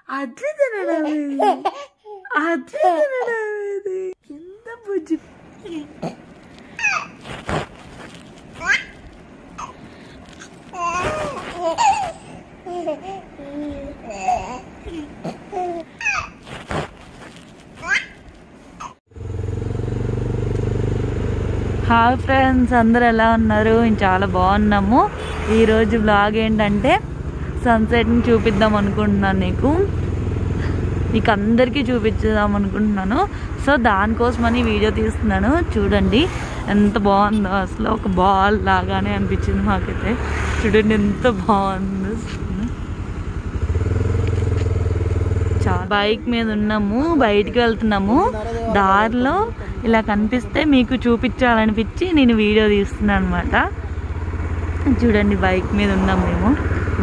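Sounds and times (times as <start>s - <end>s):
person speaking: 0.0s - 1.7s, 2.3s - 6.2s, 31.2s - 42.8s, 45.7s - 52.4s
baby squealing: 6.8s - 7.2s, 8.6s - 9.0s, 9.6s - 9.8s, 10.4s - 16.4s, 17.8s - 18.2s
motorbike engine running: 19.1s - 57.0s.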